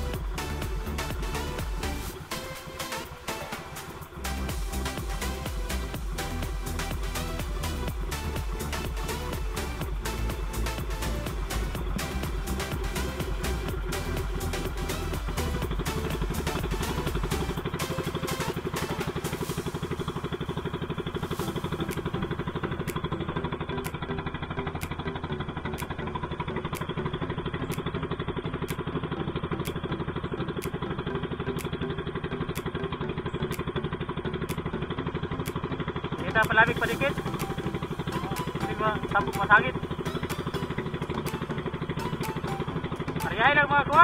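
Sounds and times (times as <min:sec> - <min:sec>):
background music: 0:00.0 - 0:44.0
small boat engine running: 0:00.0 - 0:44.0.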